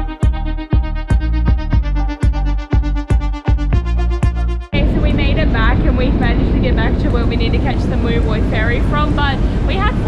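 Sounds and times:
ferry engine low rumble: 4.8 - 10.0
people talking: 4.8 - 10.0.

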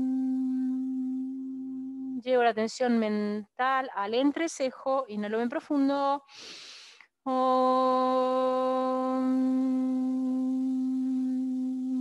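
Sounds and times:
woman humming chant: 0.0 - 2.3, 7.3 - 12.0.

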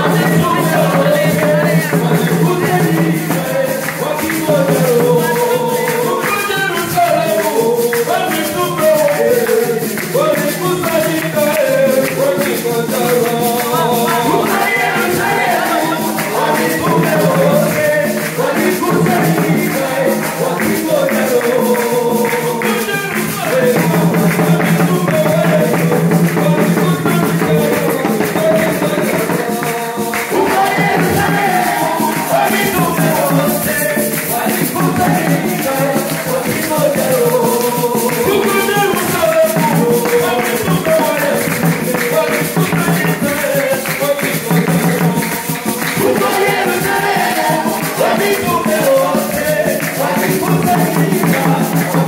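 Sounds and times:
congregation singing a hymn: 0.0 - 52.0
hand drums: 0.0 - 52.0.

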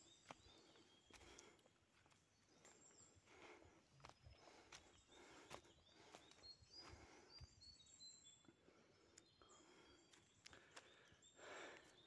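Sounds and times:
faint footsteps on forest path: 0.0 - 12.0.

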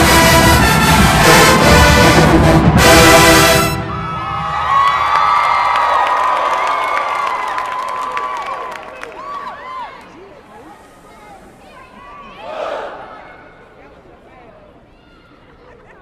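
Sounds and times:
marching band brass playing: 0.0 - 4.6
crowd cheering and shouting: 3.6 - 13.8.

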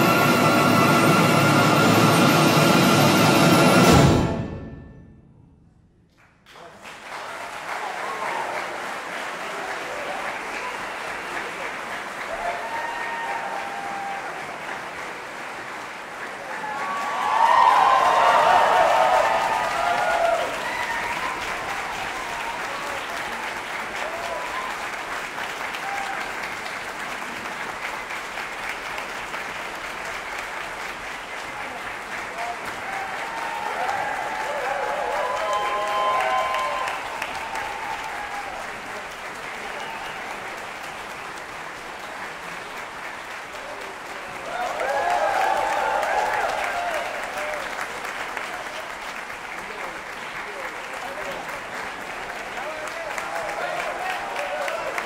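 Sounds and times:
audience applauding: 0.0 - 3.8, 6.1 - 55.0
audience cheering: 6.6 - 27.5, 31.4 - 42.8, 43.6 - 55.0.

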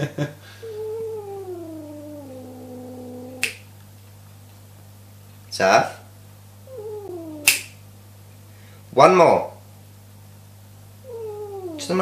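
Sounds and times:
cat moaning: 0.6 - 3.6, 6.7 - 7.7, 11.0 - 12.0
sharp click: 7.4 - 7.8.

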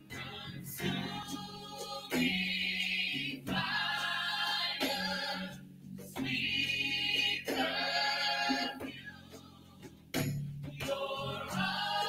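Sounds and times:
choir singing held notes: 0.0 - 9.8, 10.7 - 12.0.

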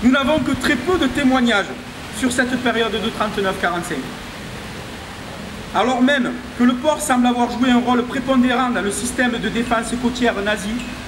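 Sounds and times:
man speaking: 0.0 - 4.2, 5.7 - 11.0
steady background hiss: 0.0 - 11.0.

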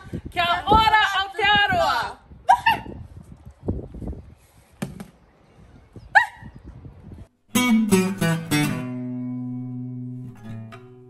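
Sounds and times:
woman shouting: 0.3 - 3.0
strummed acoustic guitar chords: 7.5 - 11.0.

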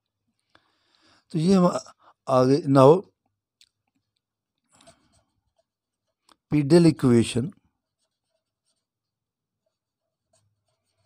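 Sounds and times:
pen scratching on paper: 4.8 - 6.3, 7.8 - 11.0.

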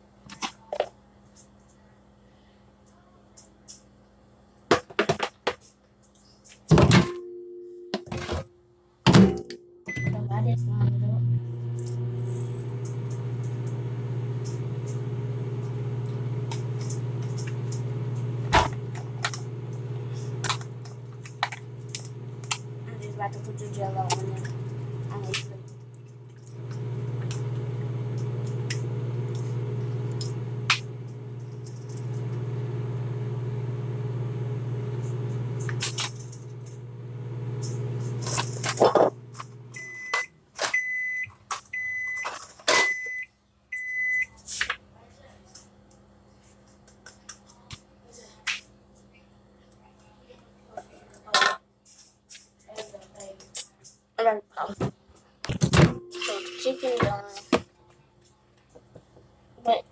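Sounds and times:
microwave oven humming: 9.1 - 44.4
microwave short high beeps: 9.9 - 10.4, 39.7 - 44.4, 55.9 - 57.0.

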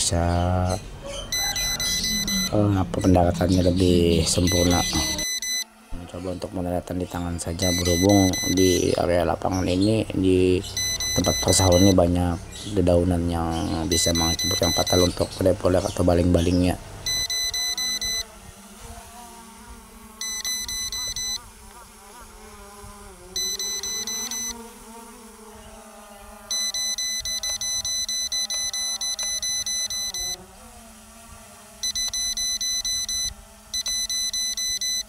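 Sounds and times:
drone propellers buzzing: 0.0 - 35.0
rapid electronic beeping: 1.3 - 5.6, 7.6 - 8.9, 10.6 - 12.1, 13.8 - 15.3, 17.1 - 18.2, 20.2 - 21.4, 23.4 - 24.6, 26.5 - 30.4, 31.8 - 35.0.

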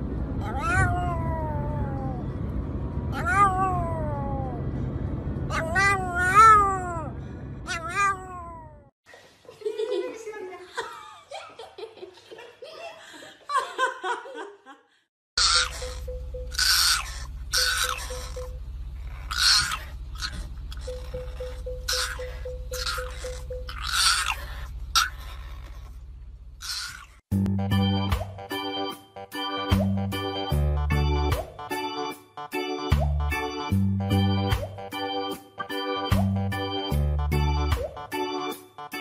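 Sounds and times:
moving car rumble: 0.0 - 8.9, 15.4 - 27.3
dog howling: 0.4 - 2.2, 3.2 - 4.6, 5.5 - 7.1, 15.4 - 25.8.

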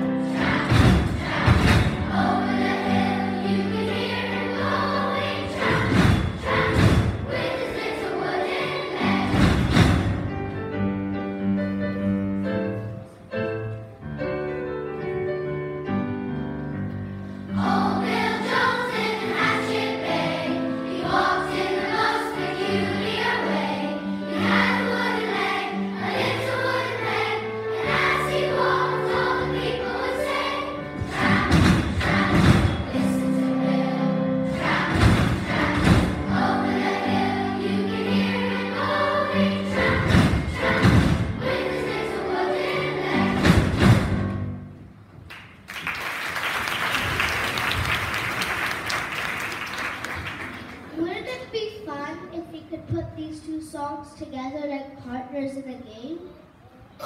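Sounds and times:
children's choir singing: 0.0 - 10.6, 17.4 - 44.5
instrumental accompaniment: 0.0 - 45.2
loud thumps on the beat: 0.4 - 2.8, 5.5 - 7.4, 9.2 - 10.4, 31.0 - 33.3, 34.5 - 36.5, 39.7 - 41.5, 43.2 - 44.5
audience applauding: 45.3 - 50.8.

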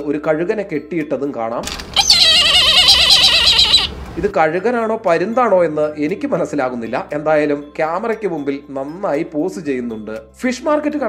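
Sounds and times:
kite screaming: 1.9 - 4.0.

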